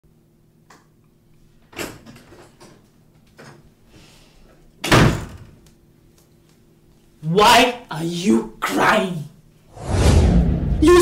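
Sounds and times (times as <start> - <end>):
door slamming: 4.8 - 5.5.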